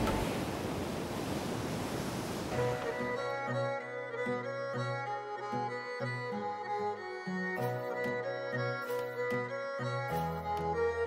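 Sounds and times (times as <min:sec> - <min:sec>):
surf washing onto beach: 0:00.0 - 0:03.0.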